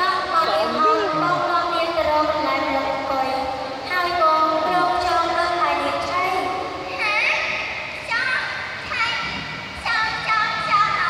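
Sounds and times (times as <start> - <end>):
woman singing through microphone: 0.0 - 2.8, 3.9 - 5.6.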